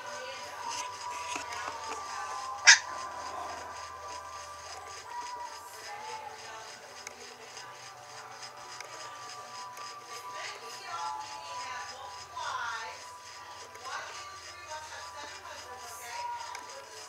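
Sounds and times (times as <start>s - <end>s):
background music held notes: 0.0s - 17.0s.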